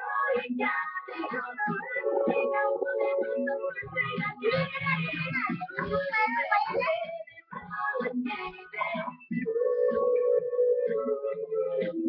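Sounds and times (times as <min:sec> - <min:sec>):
young girl singing: 0:00.0 - 0:11.9.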